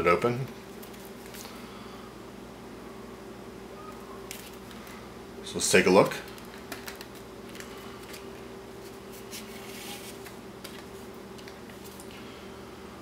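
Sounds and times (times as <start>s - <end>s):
packaging rubbing and clicking: 6.0s - 12.1s
card sleeve sliding rustle: 7.5s - 12.1s.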